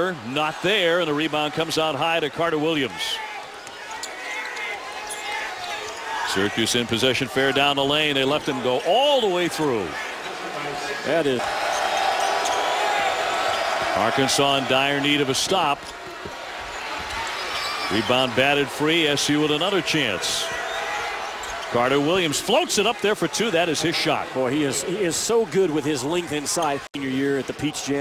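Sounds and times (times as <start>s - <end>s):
arena crowd noise: 0.0s - 28.0s.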